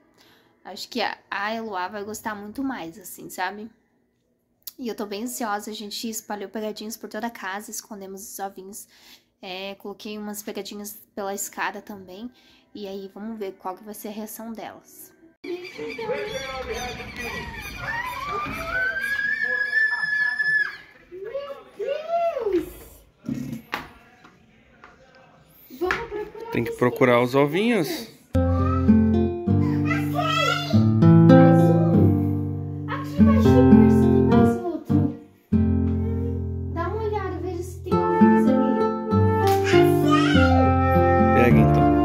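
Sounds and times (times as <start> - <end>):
child squealing: 15.5 - 21.0, 29.6 - 30.8, 39.6 - 40.9
acoustic guitar chord: 28.4 - 37.0
child calling out: 29.6 - 30.8, 39.6 - 40.8.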